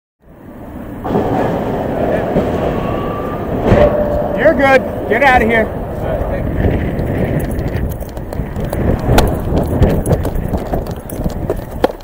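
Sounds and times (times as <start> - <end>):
highway traffic rumble: 0.2 - 12.0
faint voices: 1.2 - 7.4.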